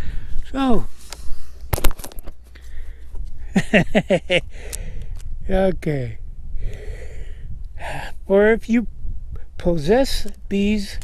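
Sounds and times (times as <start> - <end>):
man breathing: 0.0 - 1.7, 2.5 - 3.5, 4.4 - 5.3, 6.5 - 8.2
low steady rumble: 0.0 - 11.0
man speaking: 0.5 - 1.0, 5.5 - 6.2, 7.8 - 8.9, 9.6 - 11.0.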